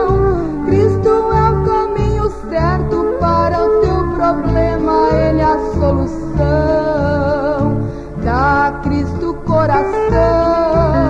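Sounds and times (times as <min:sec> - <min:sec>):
repeating bass note: 0:00.0 - 0:11.0
woman singing: 0:00.0 - 0:11.0.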